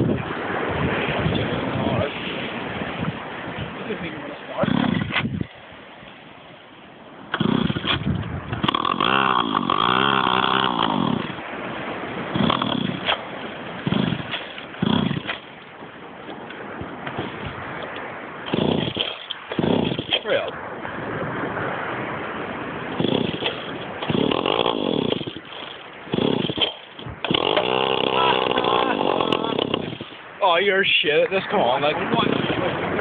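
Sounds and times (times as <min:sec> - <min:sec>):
small petrol engine pull-starting: 0:18.5 - 0:20.2, 0:23.0 - 0:30.0.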